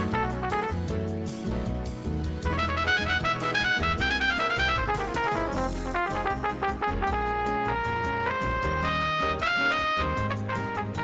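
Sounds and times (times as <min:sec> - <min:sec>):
trumpet lead: 0:00.0 - 0:01.2, 0:02.5 - 0:11.0
bass accompaniment: 0:00.0 - 0:11.0.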